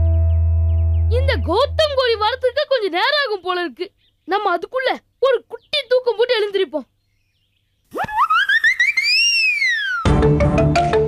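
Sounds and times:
background music with steady beat: 10.1s - 11.0s.

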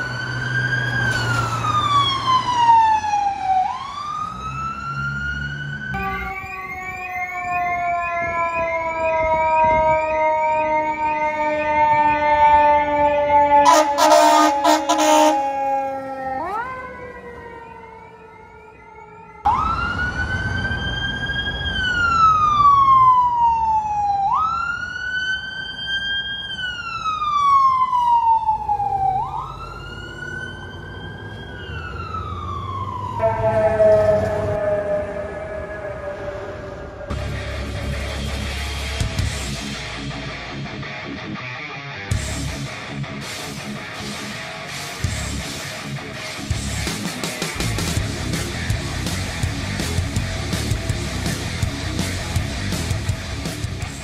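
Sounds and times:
ambulance siren wailing: 0.0s - 39.4s
fire engine siren falling tone: 0.0s - 39.4s
vehicle siren wailing: 0.0s - 39.4s
horn blasts: 6.0s - 6.4s, 13.6s - 15.5s, 33.2s - 36.0s.

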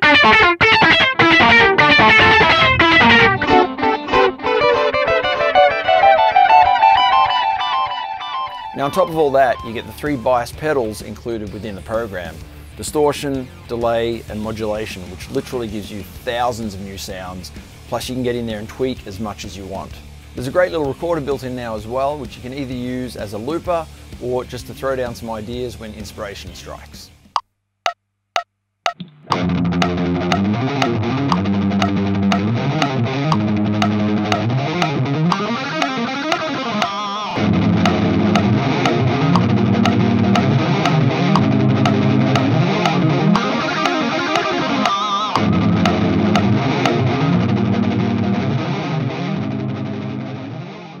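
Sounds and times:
metronome clicks: 0.0s - 5.2s, 7.0s - 11.0s, 27.9s - 48.0s
electric guitar riff: 0.0s - 16.1s, 29.0s - 51.0s
overdubbed guitar part: 0.0s - 26.6s, 28.9s - 51.0s.

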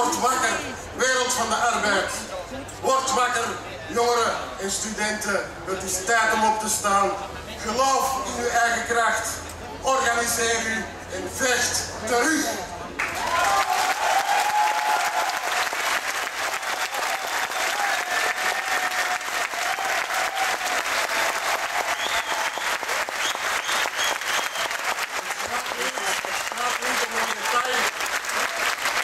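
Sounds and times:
crowd applauding: 13.0s - 29.0s.

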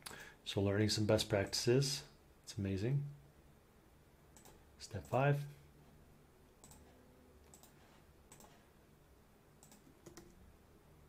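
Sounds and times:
faint computer mouse clicks: 4.4s - 5.2s, 6.6s - 6.9s, 7.5s - 8.6s, 9.6s - 10.4s.

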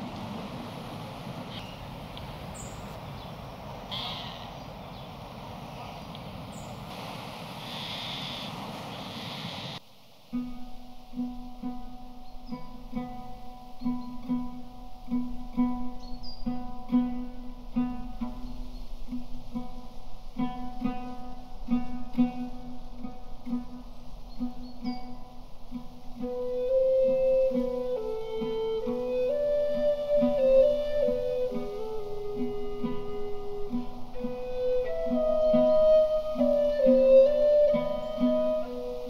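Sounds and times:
outdoor rushing noise: 0.0s - 9.8s.

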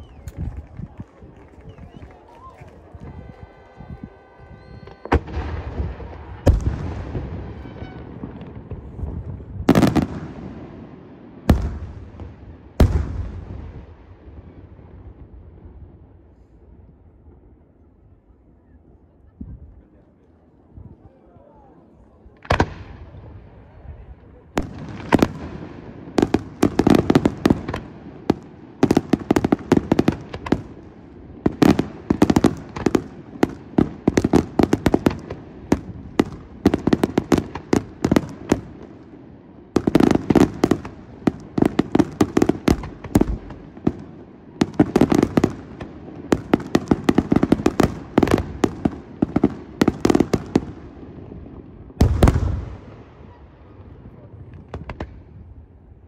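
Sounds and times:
fireworks bangs and crackles: 0.0s - 18.0s, 22.2s - 56.0s
deep firework boom: 3.0s - 16.0s.

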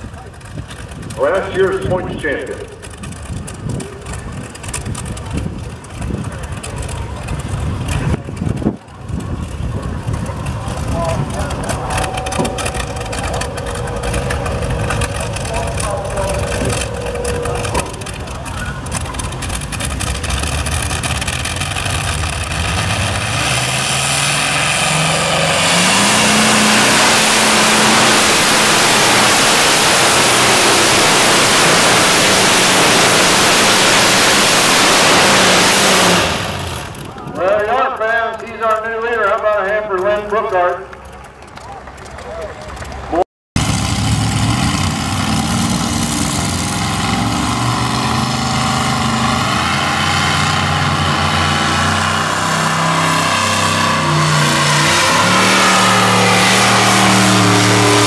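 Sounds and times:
radial engine tractor roaring: 0.0s - 58.0s.

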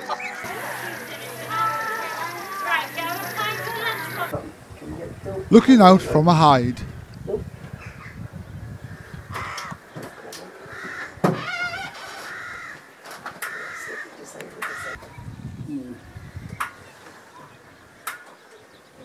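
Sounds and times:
harsh bird calls: 0.0s - 4.3s, 7.7s - 19.0s.

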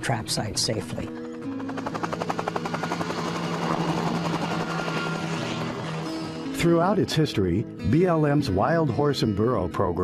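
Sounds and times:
helicopter rotor beating: 0.1s - 7.1s.

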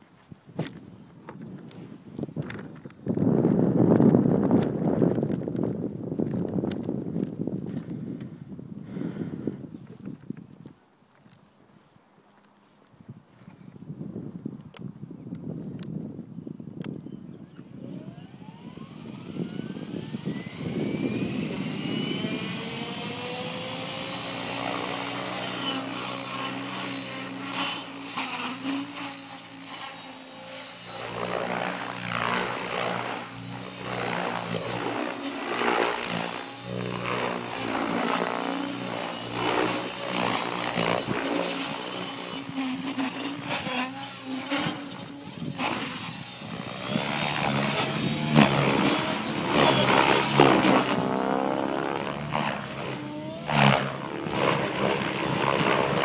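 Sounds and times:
electric motor whine: 17.4s - 56.0s
rotor blades chopping: 18.0s - 56.0s.

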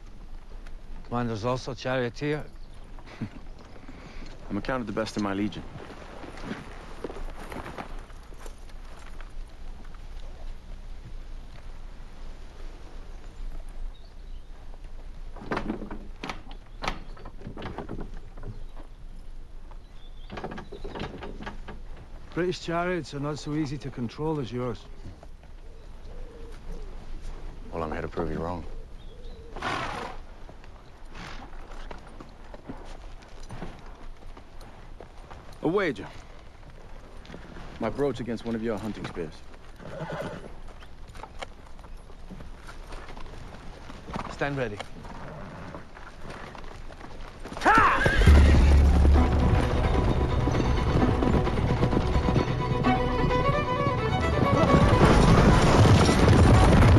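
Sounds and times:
horse hooves clopping: 0.0s - 56.9s
wooden frame creaking and knocking: 15.3s - 18.9s, 20.2s - 22.2s, 48.2s - 56.9s.

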